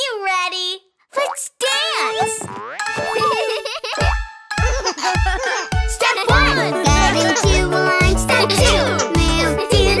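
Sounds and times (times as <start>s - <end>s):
children's dance song: 1.6s - 10.0s
bass drum beat: 6.3s - 10.0s.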